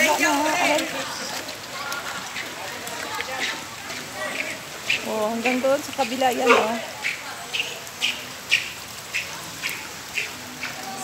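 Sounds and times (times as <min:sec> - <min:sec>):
faint voices: 0:00.0 - 0:11.0
footsteps splashing on wet ground: 0:00.0 - 0:11.0.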